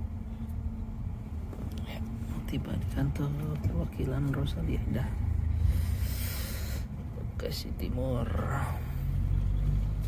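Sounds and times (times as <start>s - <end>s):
bus engine rumble: 0.0s - 10.0s.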